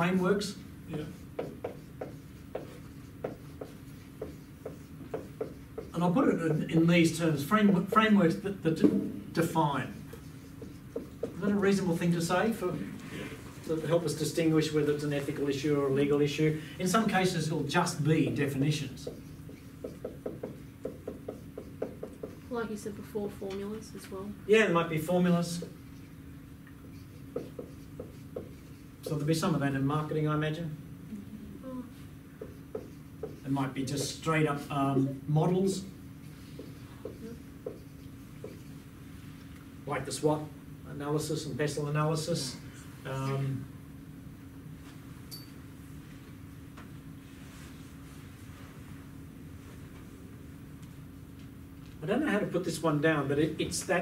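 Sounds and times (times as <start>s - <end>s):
marker writing on whiteboard: 0.0s - 12.6s, 17.0s - 22.8s, 25.4s - 29.4s, 32.4s - 38.9s
steady low hum: 0.0s - 54.0s.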